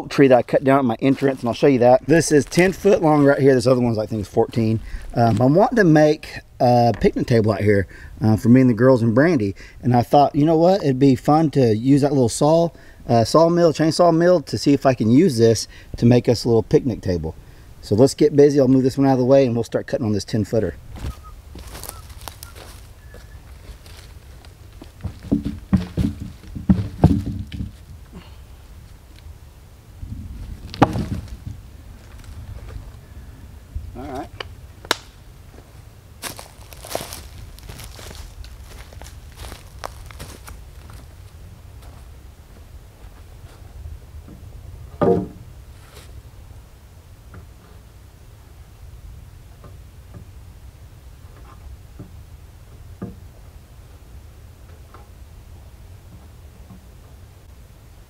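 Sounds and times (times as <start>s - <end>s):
steps on dry leaves: 21.0s - 25.3s, 35.5s - 42.1s
wooden thumps of log shifting: 21.0s - 28.4s, 30.4s - 32.9s, 36.2s - 41.0s, 44.3s - 45.5s
wooden knocks: 25.0s - 27.8s, 45.0s - 45.4s
steady low rumble: 27.7s - 47.3s.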